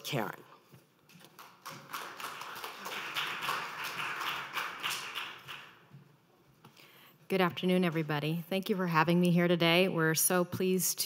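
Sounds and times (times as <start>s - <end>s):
audience applauding: 1.3s - 5.9s.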